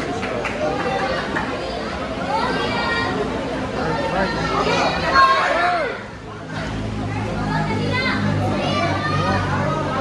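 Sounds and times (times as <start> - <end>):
children's voices: 0.6 - 10.0.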